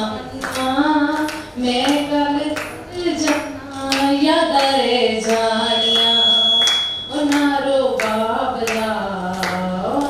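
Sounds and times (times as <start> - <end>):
woman singing: 0.0 - 10.0
thin high steady tone: 5.2 - 7.8.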